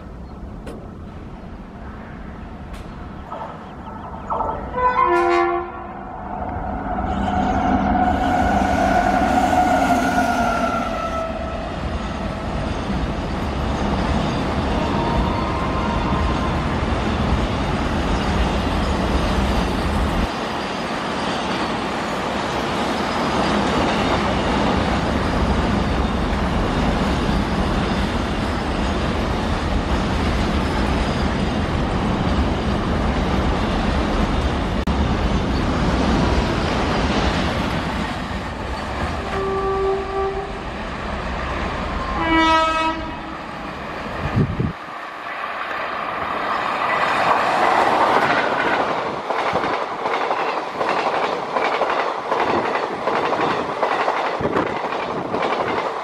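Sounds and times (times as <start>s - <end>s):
train rumbling past: 0.0s - 56.0s
locomotive horn blasts: 4.7s - 6.0s, 39.2s - 40.6s, 42.1s - 43.4s.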